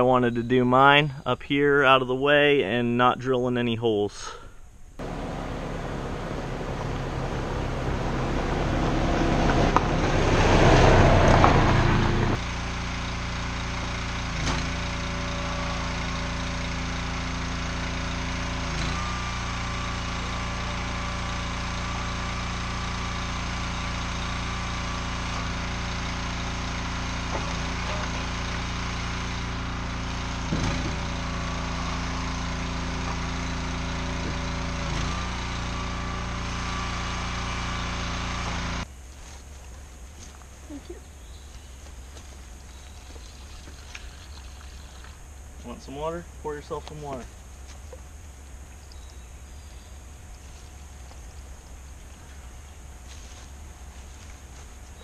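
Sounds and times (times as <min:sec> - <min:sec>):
utility vehicle driving past: 0:05.0 - 0:38.8
engine idling with knocks: 0:05.0 - 0:55.0.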